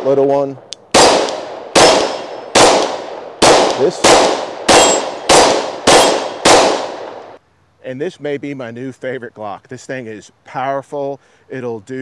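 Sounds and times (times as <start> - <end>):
pistol shots with echo: 0.9 - 7.4.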